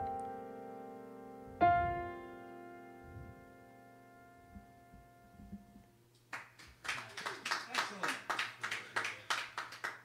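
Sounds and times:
sparse audience clapping: 6.3 - 10.0.

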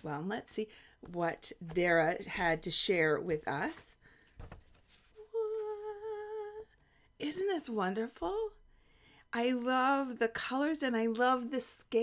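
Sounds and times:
woman humming: 5.2 - 6.7.

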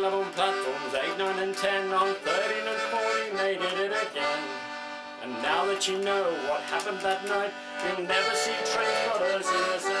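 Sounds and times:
button accordion playing folk music: 0.0 - 10.0
person singing: 0.0 - 10.0.

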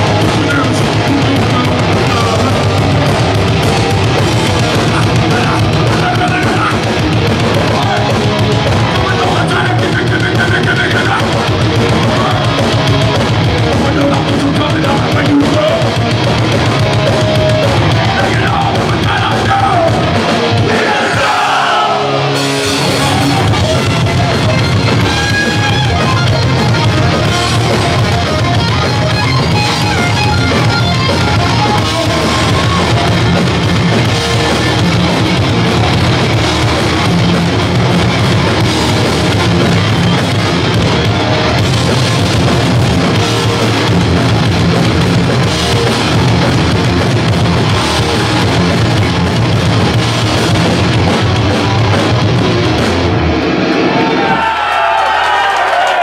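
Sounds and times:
distorted electric guitars: 0.0 - 56.0
drum kit: 0.0 - 56.0
punk band playing live: 0.0 - 56.0.

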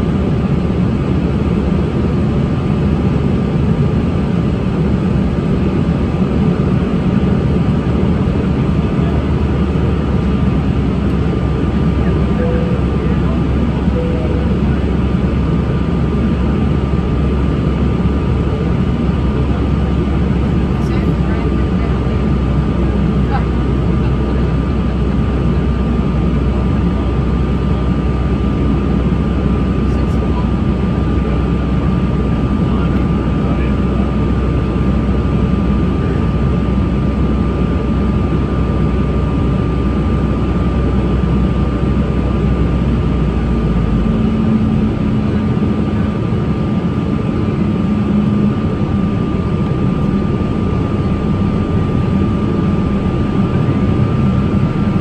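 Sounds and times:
low hum: 0.0 - 33.7, 37.0 - 55.0
jet engines and rushing air: 0.0 - 55.0
thin high hum: 12.0 - 15.4, 47.2 - 55.0.

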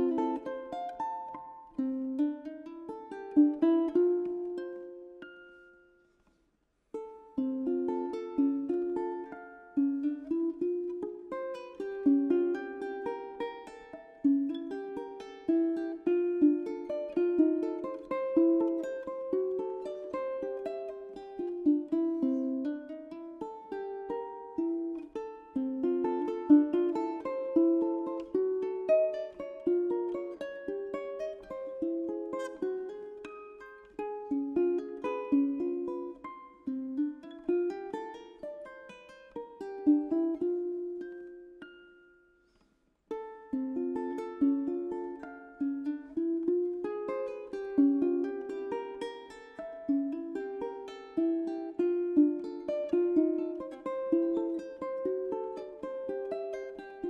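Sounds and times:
ukulele playing: 0.0 - 57.0.

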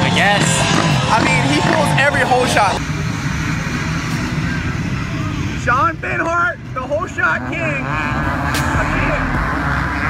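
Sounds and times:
dirt bike engines running: 0.0 - 10.0.

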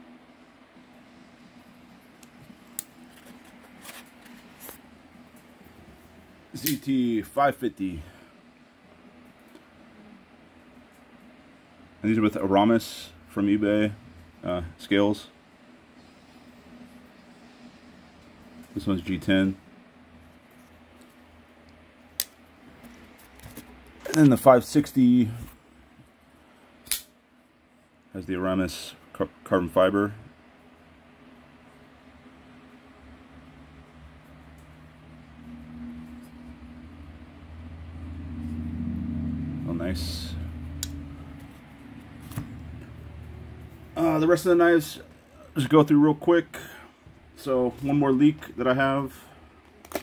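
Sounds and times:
low steady hum: 0.0 - 50.0.

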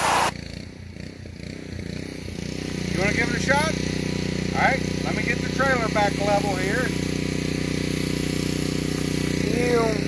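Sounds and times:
pressure washer engine running: 0.0 - 10.0.

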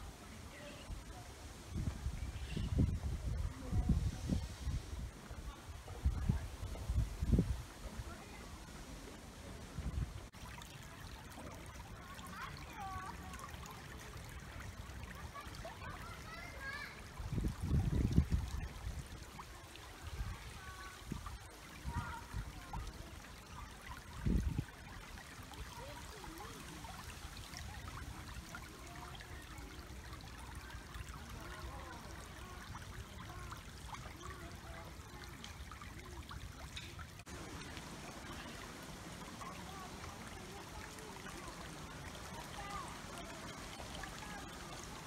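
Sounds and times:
river trickling over stones: 0.0 - 45.0.

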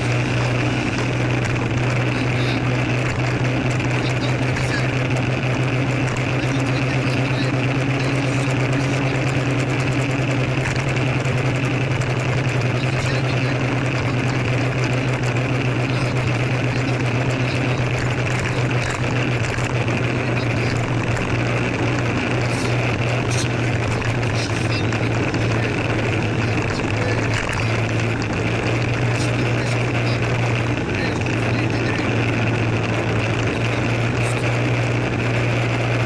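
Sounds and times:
scooter engine running: 0.0 - 36.0.

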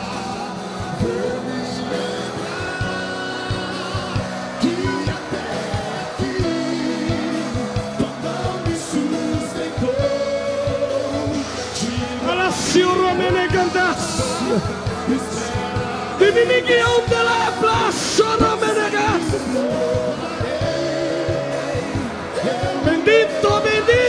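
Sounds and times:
drums: 0.0 - 24.0
keyboard chords: 0.0 - 24.0
person singing: 0.0 - 24.0.

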